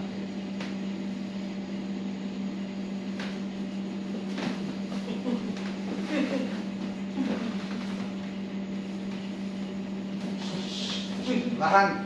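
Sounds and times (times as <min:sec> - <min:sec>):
steady machine hum: 0:00.0 - 0:12.0.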